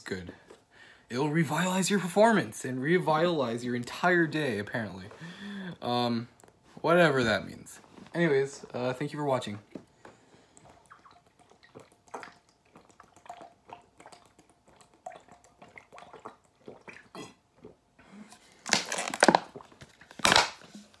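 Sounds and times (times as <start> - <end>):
gulping and swallowing: 10.6 - 18.4
plastic bottle handling noise: 18.3 - 21.0.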